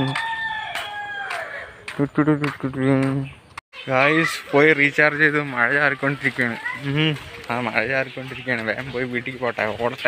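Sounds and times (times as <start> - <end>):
rooster crowing: 0.0 - 1.8.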